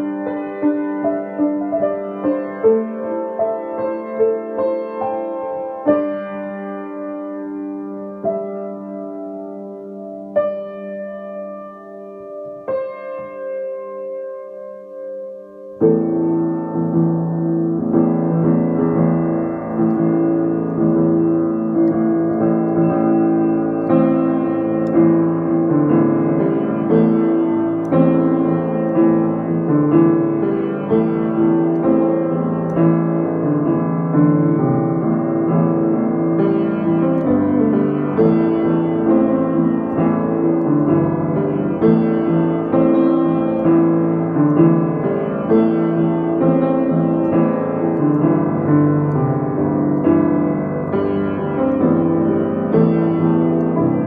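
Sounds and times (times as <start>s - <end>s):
upright piano playing: 0.0s - 54.0s.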